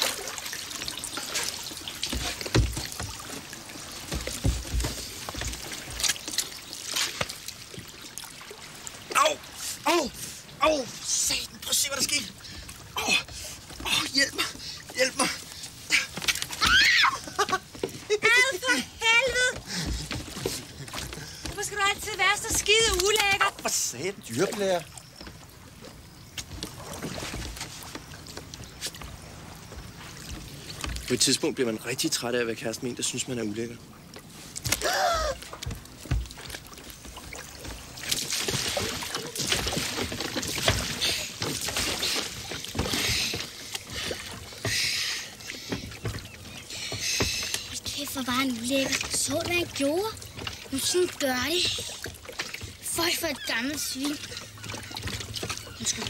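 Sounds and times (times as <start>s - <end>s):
oars splashing in water: 0.0s - 56.0s
wooden knocks: 2.0s - 5.8s.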